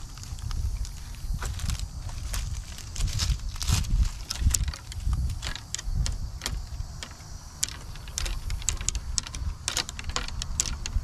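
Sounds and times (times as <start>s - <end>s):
footsteps through grass and branches: 0.0s - 11.0s
twigs snapping: 0.0s - 11.0s
wind rumble on microphone: 0.0s - 11.0s.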